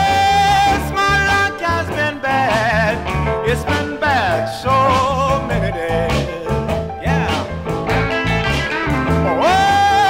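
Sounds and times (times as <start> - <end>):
electric blues band: 0.0 - 10.0
rhythmic bass line: 0.0 - 10.0.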